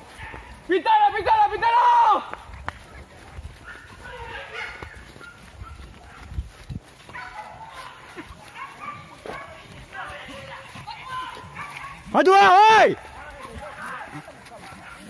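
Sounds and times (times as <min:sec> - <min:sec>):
dogs barking and yelping: 0:00.0 - 0:00.7, 0:02.5 - 0:12.3, 0:13.0 - 0:15.0
footsteps running through grass: 0:00.0 - 0:15.0
distant men shouting: 0:09.1 - 0:15.0.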